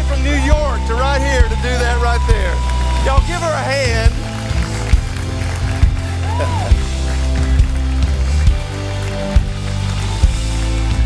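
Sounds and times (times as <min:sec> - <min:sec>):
live band playing slow song: 0:00.0 - 0:11.0.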